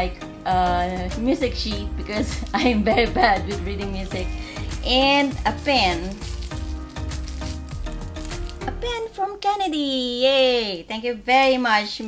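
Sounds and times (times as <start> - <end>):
background music: 0.0 - 10.2
plastic wrapper crinkling: 2.1 - 9.0.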